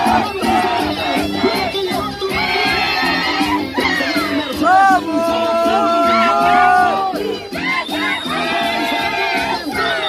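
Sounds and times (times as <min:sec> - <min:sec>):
carnival music: 0:00.0 - 0:10.0
crowd noise: 0:00.0 - 0:10.0
high voices singing and crying out: 0:00.0 - 0:10.0.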